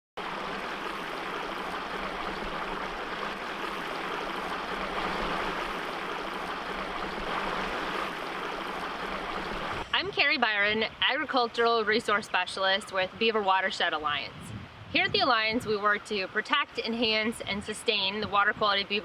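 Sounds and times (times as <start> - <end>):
creek water rushing over rocks: 0.2 - 11.0.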